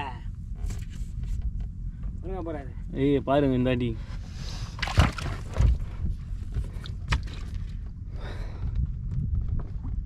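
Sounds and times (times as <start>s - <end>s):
wind and water rumble: 0.0s - 10.0s.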